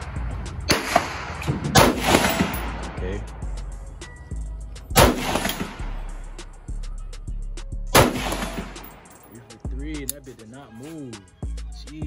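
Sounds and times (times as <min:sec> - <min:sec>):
rifle shots with echo: 0:00.6 - 0:03.0, 0:04.9 - 0:06.1, 0:07.9 - 0:09.2.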